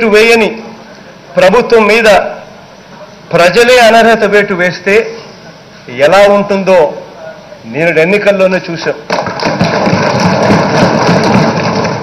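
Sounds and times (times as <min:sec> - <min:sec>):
crowd clapping: 0:09.1 - 0:12.0.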